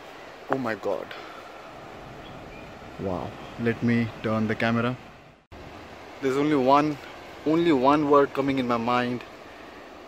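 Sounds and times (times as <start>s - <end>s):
open air rushing noise: 0.0s - 10.0s.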